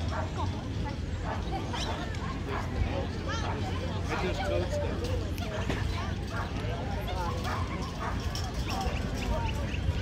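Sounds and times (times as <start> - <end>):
dogs yipping and barking: 0.0 - 3.8, 5.5 - 9.8
people chattering: 0.0 - 10.0.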